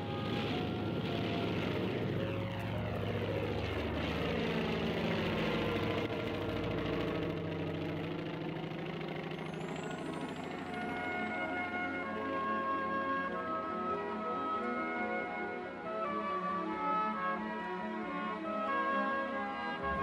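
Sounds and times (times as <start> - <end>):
propeller airplane passing: 0.0 - 13.7, 19.8 - 20.0
quiet background music: 0.0 - 20.0.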